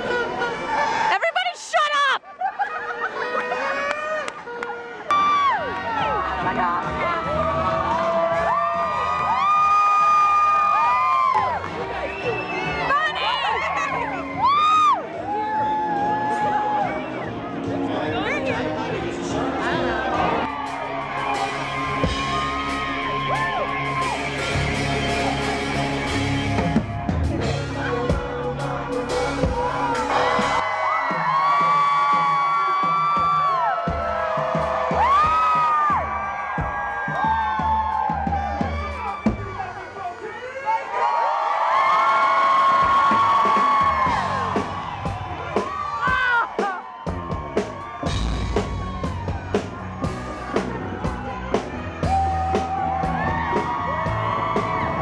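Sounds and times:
crowd cheering and whooping: 0:00.0 - 0:17.8, 0:19.2 - 0:55.0
live rock band music: 0:10.7 - 0:40.2, 0:42.6 - 0:55.0.

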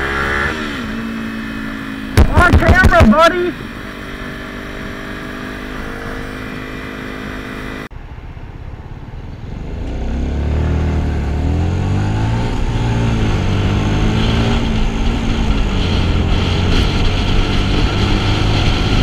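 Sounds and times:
motorcycle engine accelerating: 0:00.0 - 0:19.0
motorcycle engine cruising: 0:00.0 - 0:19.0.

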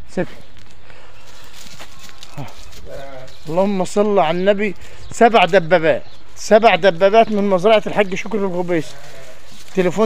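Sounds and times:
footsteps on straw: 0:00.4 - 0:10.0.

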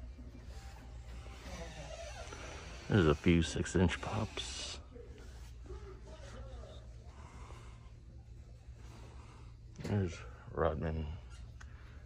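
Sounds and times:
store background hum: 0:00.0 - 0:12.0
man speaking: 0:02.8 - 0:07.0.

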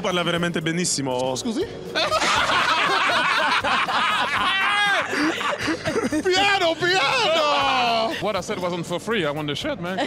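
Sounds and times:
people laughing: 0:01.9 - 0:08.8.

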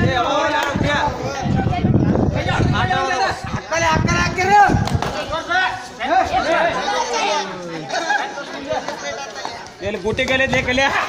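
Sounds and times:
young voices talking and calling out: 0:00.0 - 0:11.0.

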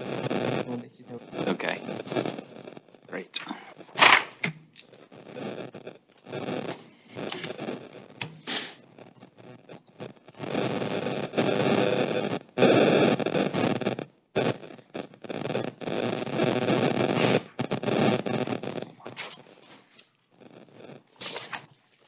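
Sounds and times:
loud static-like rustling: 0:00.0 - 0:22.0.

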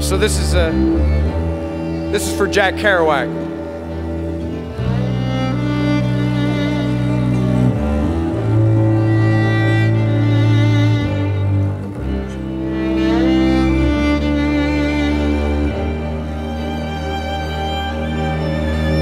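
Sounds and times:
string ensemble playing chords: 0:00.0 - 0:19.0.

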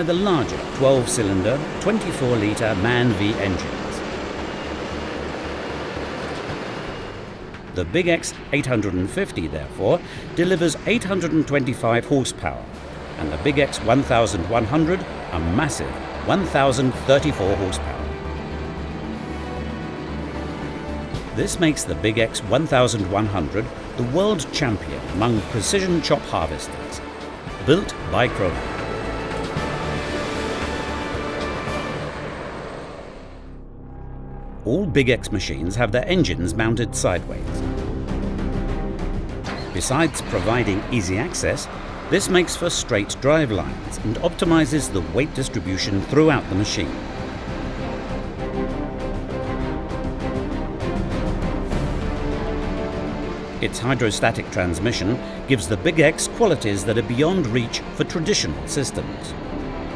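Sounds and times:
harvester engine and cutting machinery: 0:00.0 - 0:33.4, 0:39.0 - 0:59.9
low hum: 0:00.0 - 0:59.9.

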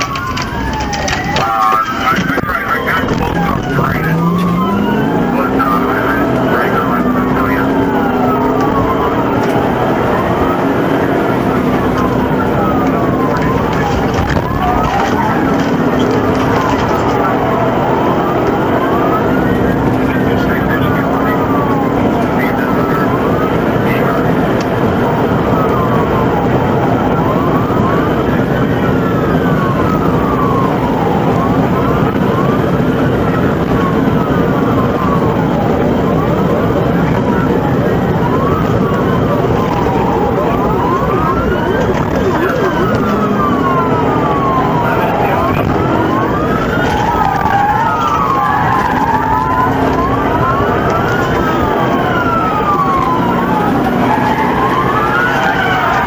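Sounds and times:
car road and engine noise: 0:00.0 - 0:56.0
police siren wailing: 0:00.0 - 0:56.0.

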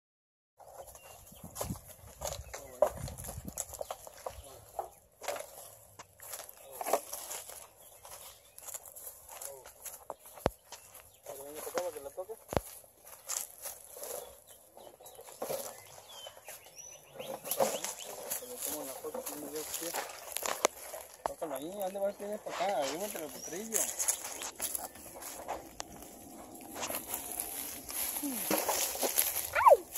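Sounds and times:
footsteps on dry leaves: 0:00.6 - 0:29.9
horse hooves on dry leaves: 0:00.6 - 0:29.9.

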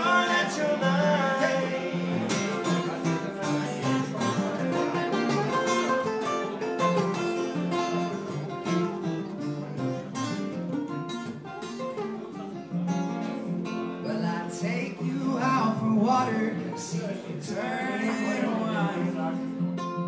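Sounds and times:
acoustic guitars playing: 0:00.0 - 0:20.0.

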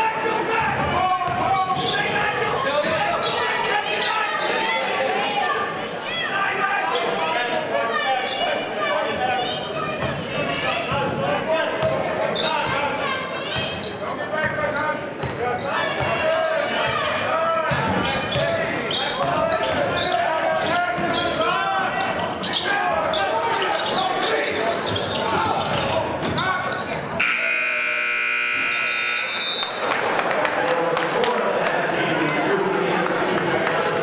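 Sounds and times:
players and crowd calling out: 0:00.0 - 0:30.1
scoreboard horn: 0:27.2 - 0:29.8.

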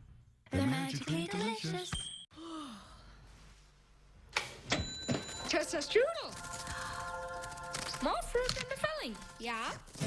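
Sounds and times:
person sighing: 0:02.3 - 0:03.2.

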